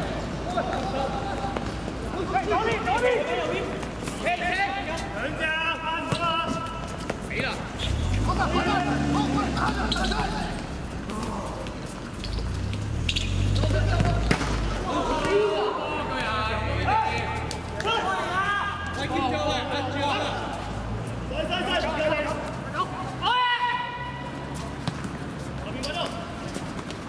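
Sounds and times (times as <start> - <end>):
players shouting: 0.0 - 6.8, 7.4 - 11.7, 12.7 - 24.8
football kicked and bouncing: 24.8 - 25.4.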